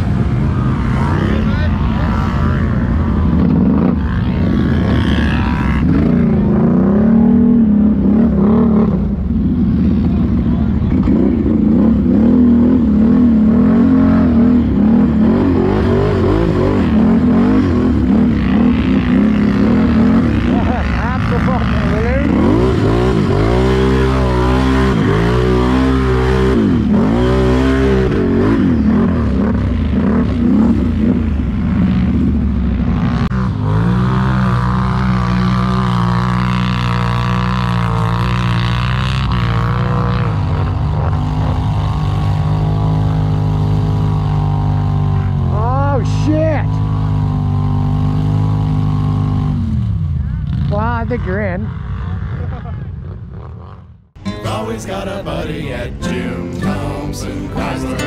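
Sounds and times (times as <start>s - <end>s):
atv engine revving: 0.0s - 58.0s.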